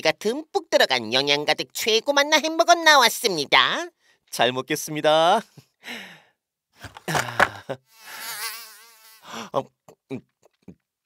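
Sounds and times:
buzzing comic sound effect: 7.9 - 9.3.

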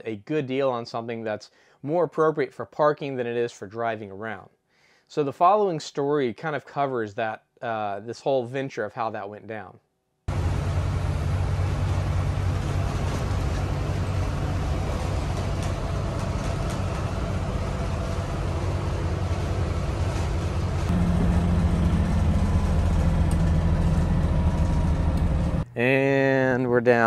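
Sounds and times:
diesel bus engine running: 10.3 - 25.6
road noise: 10.3 - 25.6.

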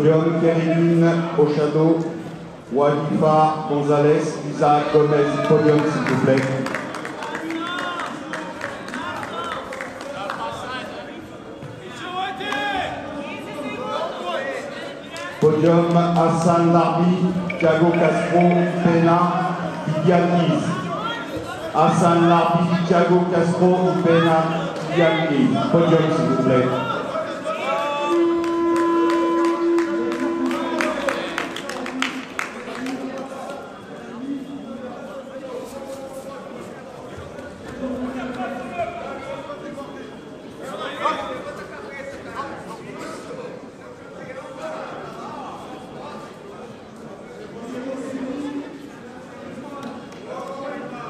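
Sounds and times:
crowd voices: 0.0 - 51.0
crowd clapping: 5.6 - 10.9, 28.0 - 33.6
indistinct voices talking: 16.6 - 21.5.

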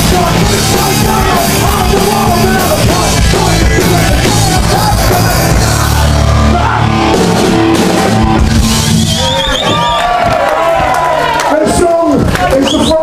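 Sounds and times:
punk rock band playing loud: 0.0 - 12.4.

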